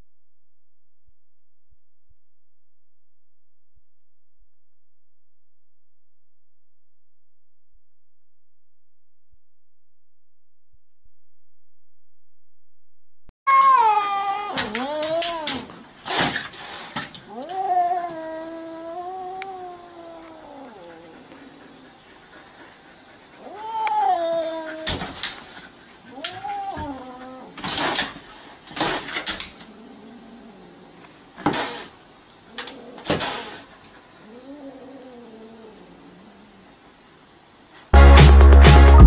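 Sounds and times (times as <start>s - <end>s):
cat yowling: 13.5s - 15.8s, 17.3s - 21.2s, 23.4s - 25.1s, 26.1s - 27.6s, 34.2s - 36.4s
cat hissing: 14.4s - 21.8s, 22.6s - 30.6s, 31.4s - 36.6s.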